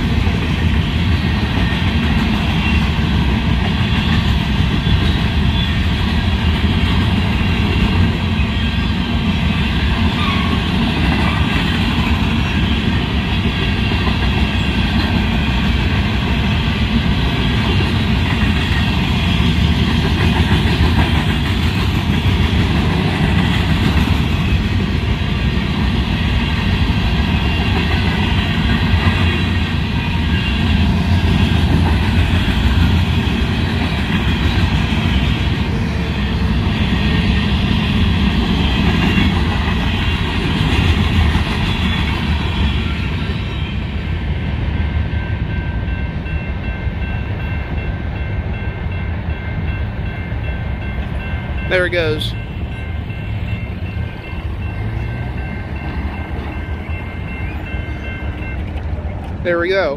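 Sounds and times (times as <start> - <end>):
freight train rumble and wheel clatter: 0.0 - 59.9
railroad crossing bell ringing: 22.1 - 41.0, 41.6 - 59.9.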